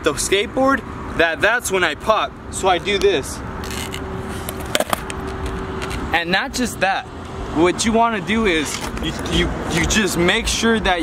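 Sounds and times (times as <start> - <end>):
skateboard wheels rolling on concrete: 3.6 - 6.1.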